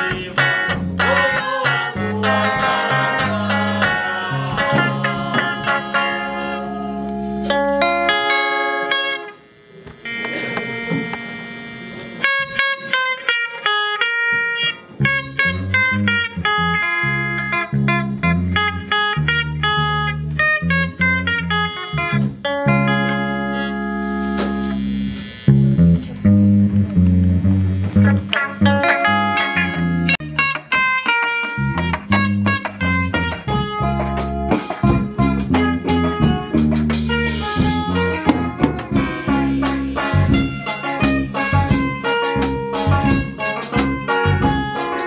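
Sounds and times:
electric guitars through amplifier: 0.0 - 45.0.

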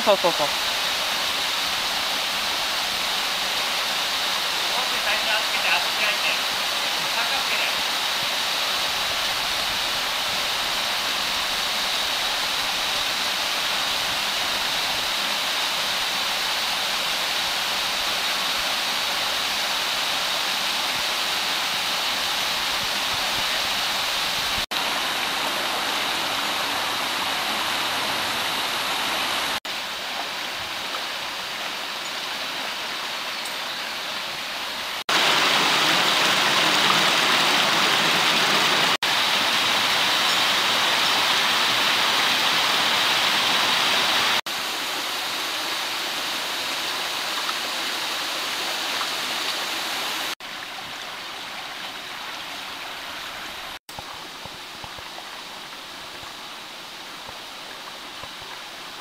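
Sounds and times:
water rushing over rocks: 0.0 - 59.0.

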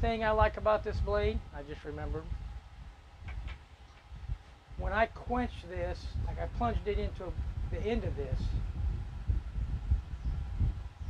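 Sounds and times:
low uneven rumble: 0.0 - 11.0.

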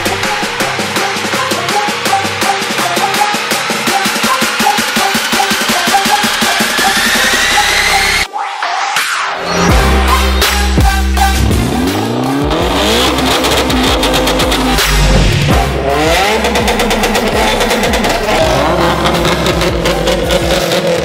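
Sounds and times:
electronic music: 0.0 - 21.0
car engines revving hard: 9.7 - 21.0.

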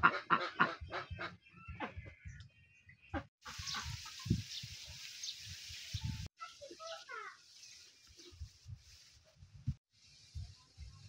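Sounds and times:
chickens clucking: 0.0 - 2.2, 3.2 - 5.0.

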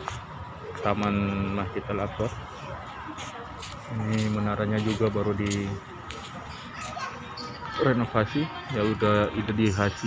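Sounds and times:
children playing and calling out: 6.1 - 9.2.

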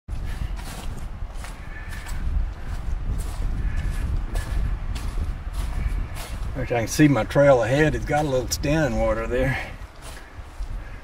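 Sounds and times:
footsteps on dry leaves: 0.1 - 11.0.

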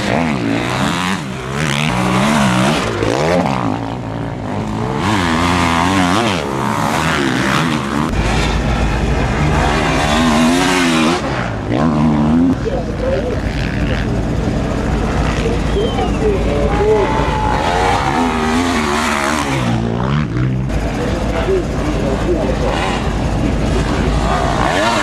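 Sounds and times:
dirt bike engines revving: 0.0 - 25.0.

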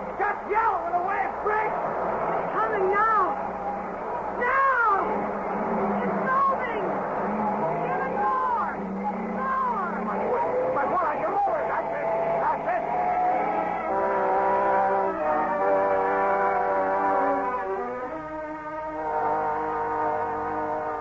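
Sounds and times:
dramatic orchestral chords: 3.4 - 21.0
car engine revving: 5.0 - 21.0.

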